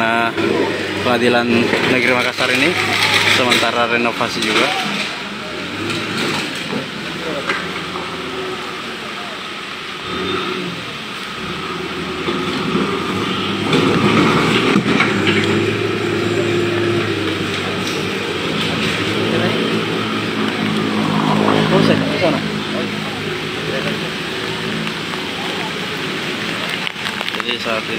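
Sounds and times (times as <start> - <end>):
diesel engine running: 0.0 - 27.9.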